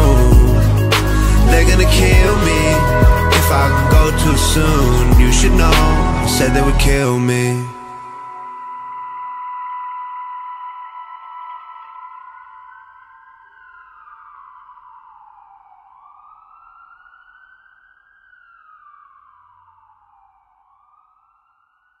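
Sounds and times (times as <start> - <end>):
music: 0.0 - 13.6
siren wailing: 0.0 - 22.0.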